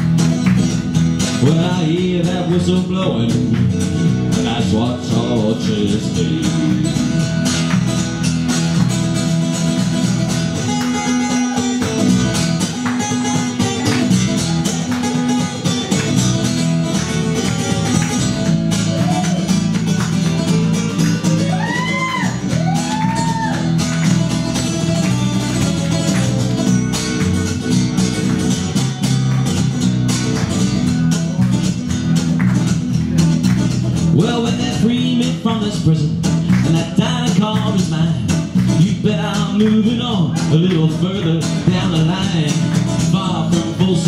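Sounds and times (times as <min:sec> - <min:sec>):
acoustic guitar strummed and picked: 0:00.0 - 0:44.0.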